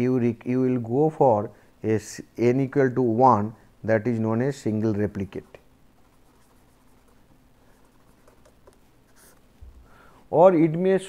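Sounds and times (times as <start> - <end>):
pen scratching on paper: 5.3 - 9.4
soft low thump: 9.6 - 9.9.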